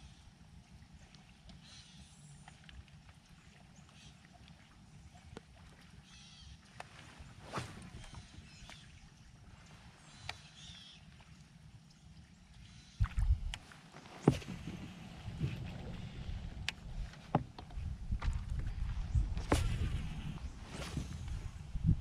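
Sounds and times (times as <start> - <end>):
water ambience: 0.0 - 22.0
wind buffeting microphone: 13.0 - 13.6, 14.2 - 22.0
gear knocking against kayak: 13.0 - 20.1.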